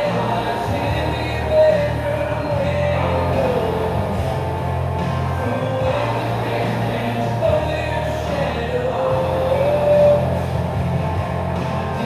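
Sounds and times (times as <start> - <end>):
rock music with singing: 0.0 - 12.0
rowing machine fan whirring: 0.0 - 12.0.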